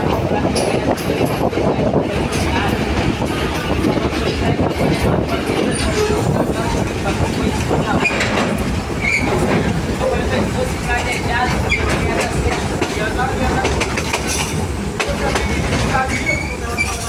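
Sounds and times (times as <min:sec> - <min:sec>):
track clicks and clacks: 0:00.0 - 0:17.0
train engine and wheels rumbling: 0:00.0 - 0:17.0.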